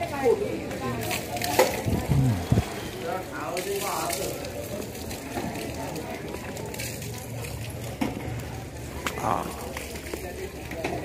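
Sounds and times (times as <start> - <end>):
outdoor background noise: 0.0 - 11.0
indistinct voices: 1.6 - 3.6.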